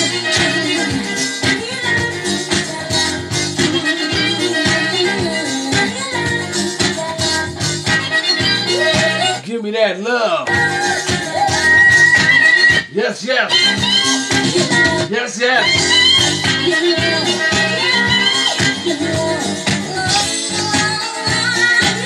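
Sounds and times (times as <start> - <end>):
oldies dance music with steady beat: 0.0 - 22.0.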